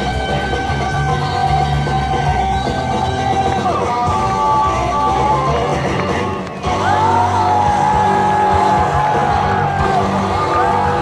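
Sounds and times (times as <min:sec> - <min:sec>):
blues-rock band playing: 0:00.0 - 0:11.0.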